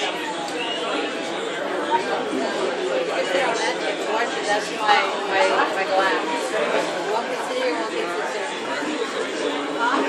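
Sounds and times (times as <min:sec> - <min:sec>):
background chatter: 0:00.0 - 0:10.0.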